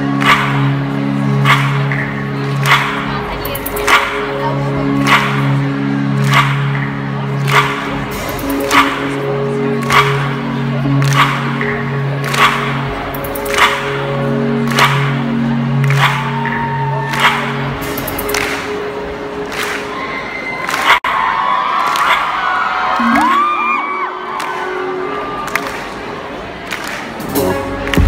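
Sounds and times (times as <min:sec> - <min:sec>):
sustained synth chords: 0:00.0 - 0:20.2
fans screaming and cheering: 0:00.0 - 0:28.0.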